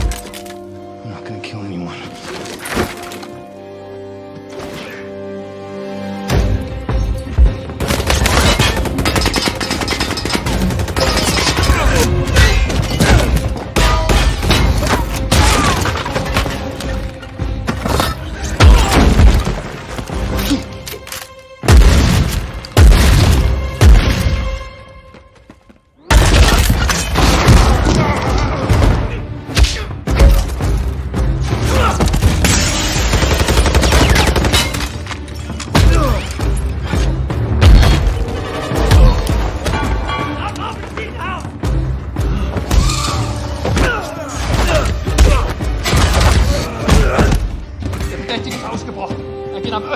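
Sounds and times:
orchestral score: 0.0s - 49.9s.

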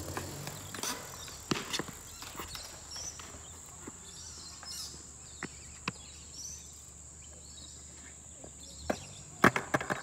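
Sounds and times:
skateboard clacking on concrete: 0.0s - 4.0s, 8.5s - 10.0s
footsteps on concrete: 0.0s - 6.2s.

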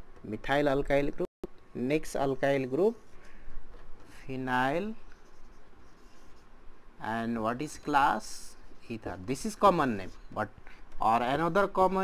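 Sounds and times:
marker pen writing on whiteboard: 2.1s - 12.0s.

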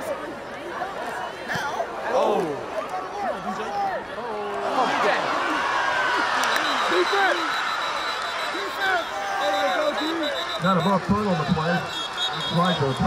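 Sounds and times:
crowd shouting and cheering: 1.0s - 13.0s.

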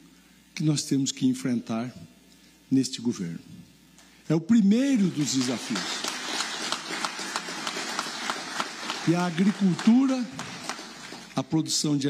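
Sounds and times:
audience applauding: 5.0s - 11.4s.

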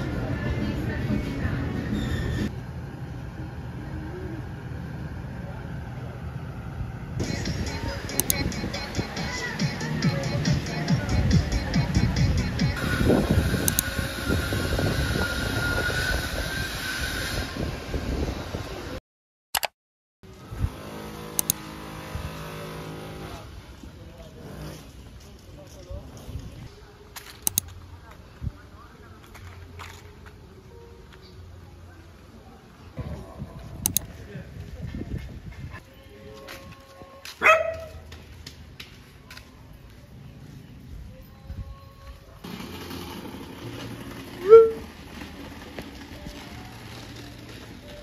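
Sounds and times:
wind buffeting microphone: 11.4s - 19.0s, 33.0s - 35.8s
high-pitched whine: 12.5s - 17.6s
dog barking: 37.4s - 38.0s.

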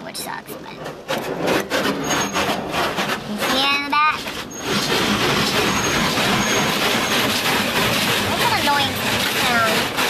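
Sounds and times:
car wash water spray and brushes: 0.0s - 10.0s.

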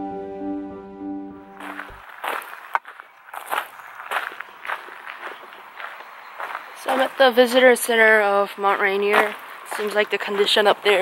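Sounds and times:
footsteps on gravel: 1.6s - 11.0s.

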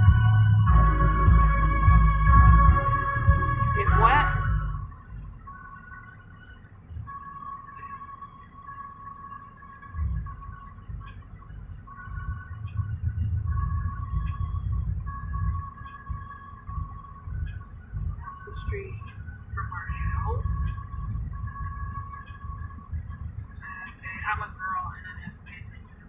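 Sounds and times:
car engine idling: 0.0s - 26.0s
faint electronic tones: 0.0s - 26.0s
traffic passing: 0.0s - 26.0s.

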